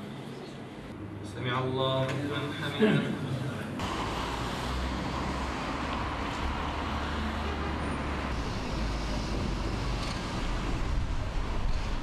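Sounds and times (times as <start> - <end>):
road traffic rumble: 2.2 - 12.0.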